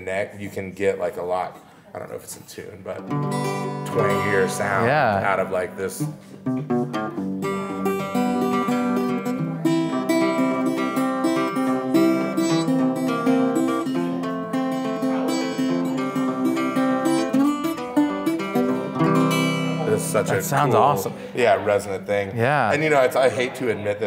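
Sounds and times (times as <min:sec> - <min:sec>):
acoustic guitar plucked notes and chords: 0:03.0 - 0:22.8.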